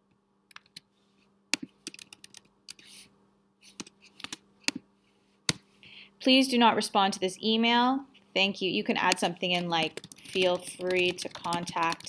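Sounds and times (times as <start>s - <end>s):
faint steady hum: 0.0s - 12.0s
computer keyboard keystrokes: 1.6s - 2.8s, 9.1s - 12.0s.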